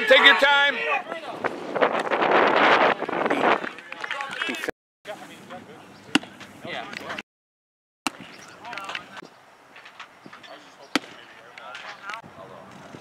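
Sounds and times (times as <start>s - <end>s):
spectators cheering and shouting: 0.0s - 1.2s.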